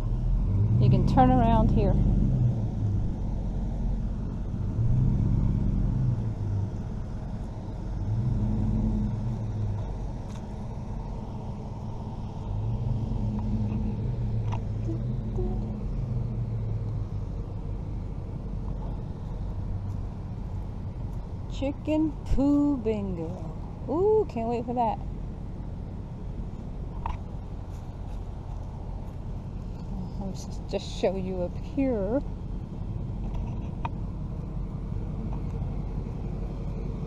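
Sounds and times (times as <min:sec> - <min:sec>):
vehicle engine rumble: 0:00.0 - 0:37.0.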